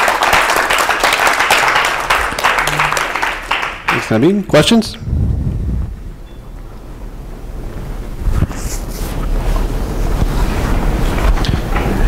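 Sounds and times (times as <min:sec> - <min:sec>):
microphone handling rumble: 0:04.9 - 0:07.0.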